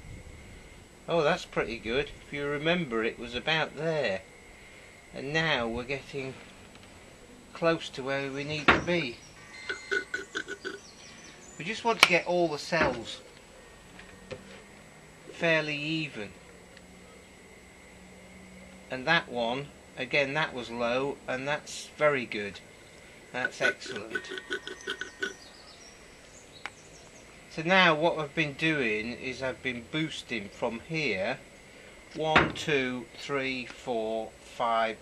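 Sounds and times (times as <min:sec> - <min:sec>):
faint bird chirps: 0:08.2 - 0:11.8, 0:22.7 - 0:27.5.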